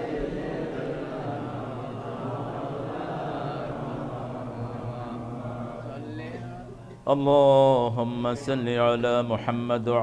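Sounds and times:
men murmuring a group chant: 0.0 - 6.9.

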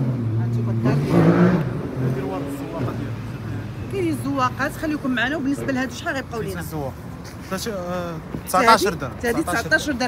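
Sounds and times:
voices talking: 0.4 - 10.0.

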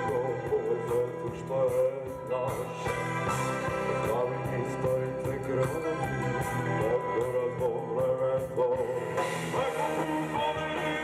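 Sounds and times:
live rock band playing: 0.0 - 11.0
man singing: 0.0 - 11.0.

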